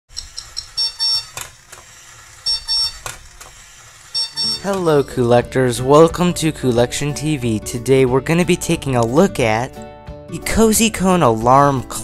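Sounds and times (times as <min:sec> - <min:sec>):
alarm clock beeping: 0:00.1 - 0:01.4, 0:02.3 - 0:03.0, 0:04.0 - 0:05.4.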